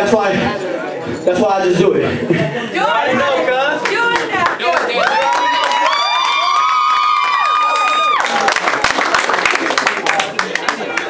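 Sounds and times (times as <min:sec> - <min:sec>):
clapping: 0:03.8 - 0:11.0
people cheering woo calls: 0:05.0 - 0:08.5.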